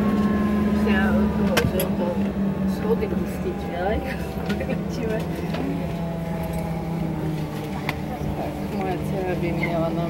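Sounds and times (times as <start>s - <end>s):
jet engines humming in cabin: 0.0s - 10.0s
faint voices: 0.8s - 10.0s.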